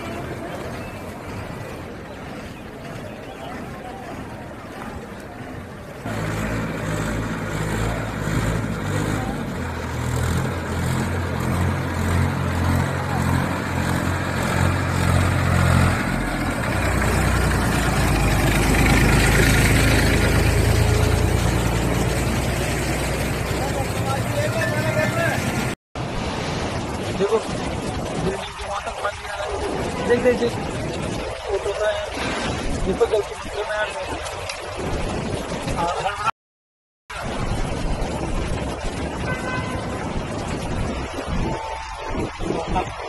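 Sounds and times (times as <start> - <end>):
tractor diesel engine running: 0.0 - 25.8.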